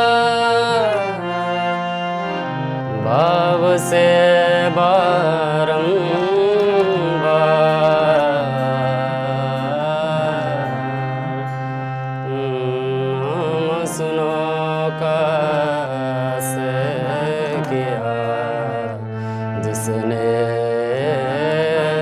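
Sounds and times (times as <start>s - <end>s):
harmonium: 0.0s - 22.0s
person singing: 0.0s - 22.0s
tabla: 0.0s - 22.0s.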